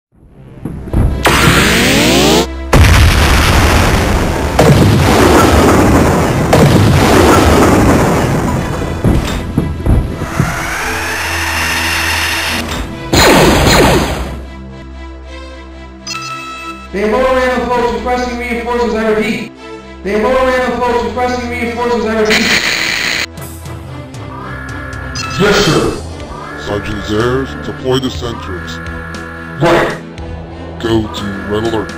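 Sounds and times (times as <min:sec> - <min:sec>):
loud booms and blasts: 0:00.9 - 0:10.6, 0:13.1 - 0:14.4
rising whine: 0:01.2 - 0:02.5, 0:10.2 - 0:12.6
rising sweep: 0:01.2 - 0:02.6, 0:10.1 - 0:12.6.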